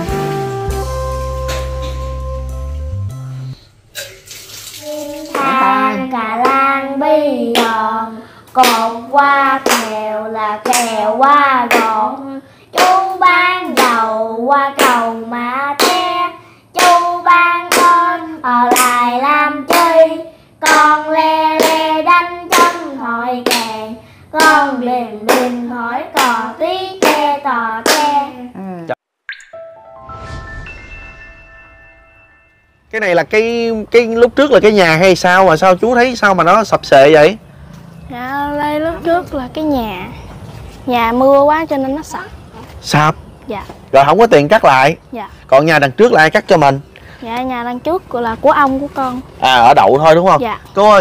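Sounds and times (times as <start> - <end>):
running water hiss: 4.0 - 6.1
children singing: 4.8 - 8.1.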